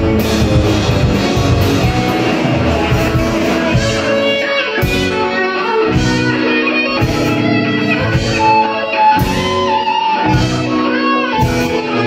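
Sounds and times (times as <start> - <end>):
drums: 0.0 - 12.0
electric guitars holding chords: 0.0 - 12.0.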